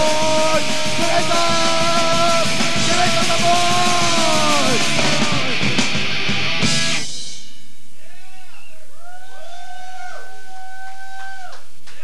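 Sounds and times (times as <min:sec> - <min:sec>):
electric guitar bending notes: 0:00.0 - 0:07.2
punk band music: 0:00.0 - 0:07.6.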